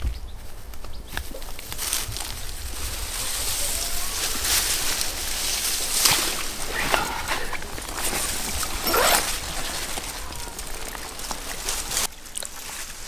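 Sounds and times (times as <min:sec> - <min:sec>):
wet fabric rustling: 0:01.3 - 0:13.0
water sloshing and dripping: 0:04.3 - 0:12.8.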